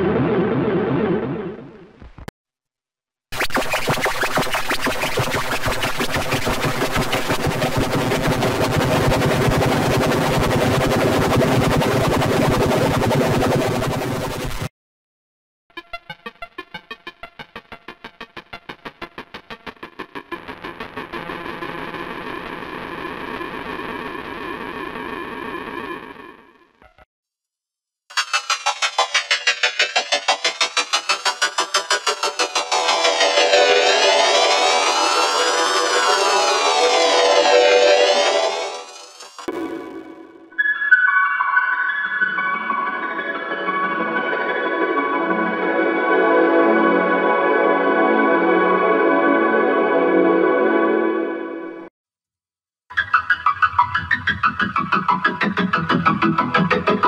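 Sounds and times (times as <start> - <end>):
synthesized jingle: 28.2 - 43.7.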